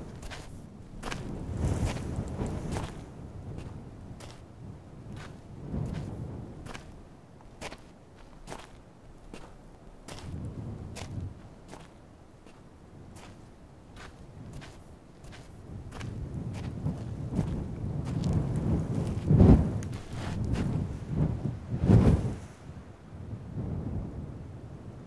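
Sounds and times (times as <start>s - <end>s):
boots walking on gravel: 0.0s - 3.0s, 7.6s - 20.8s.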